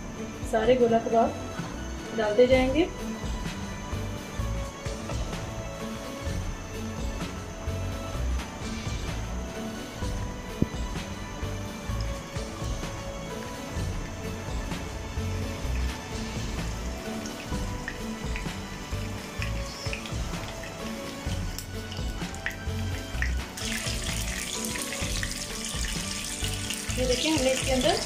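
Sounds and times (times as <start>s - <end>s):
oil sizzling and crackling in pan: 15.6s - 28.0s.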